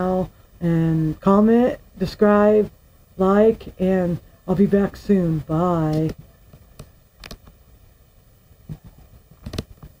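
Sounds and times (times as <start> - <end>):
person saying bye: 0.0 - 6.2.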